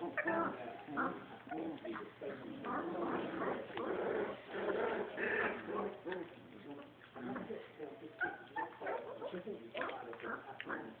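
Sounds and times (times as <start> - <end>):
background talking: 0.0 - 11.0.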